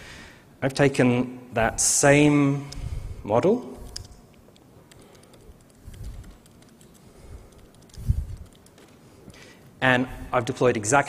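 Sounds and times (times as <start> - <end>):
laptop keyboard typing: 3.8 - 9.8.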